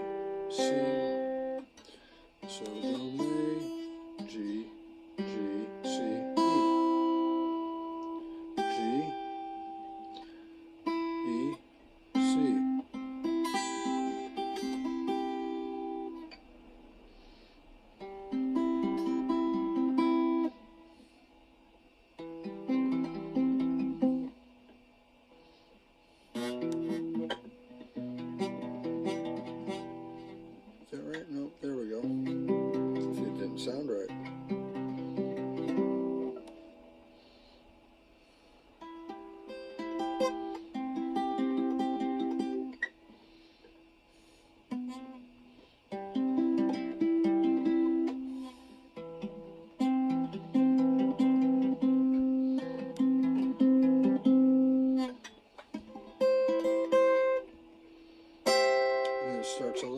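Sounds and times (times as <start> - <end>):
guitar notes picked: 0.0 - 16.5, 18.0 - 20.8, 22.2 - 24.8, 26.3 - 37.4, 38.8 - 43.0, 44.7 - 57.8, 58.4 - 59.9.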